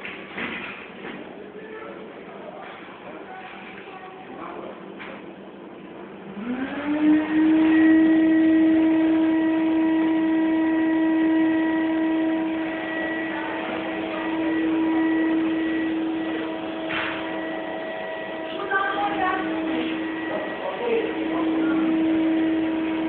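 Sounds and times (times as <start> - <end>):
electric motor humming: 6.3 - 23.0.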